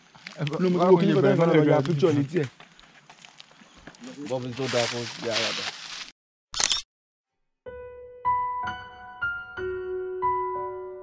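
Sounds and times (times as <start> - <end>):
camera shutter click: 6.6 - 6.9.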